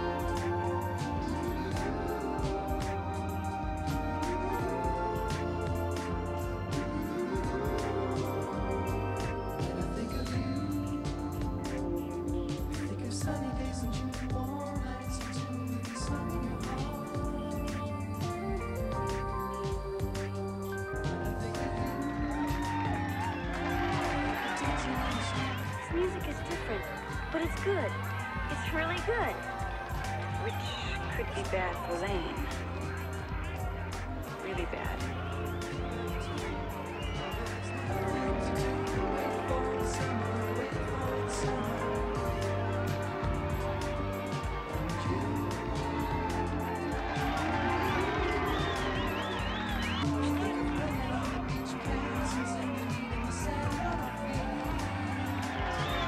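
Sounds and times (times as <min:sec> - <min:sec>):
bass line: 0:00.0 - 0:56.0
crowd cheering: 0:00.0 - 0:56.0
drums: 0:00.0 - 0:56.0
person singing: 0:00.0 - 0:56.0.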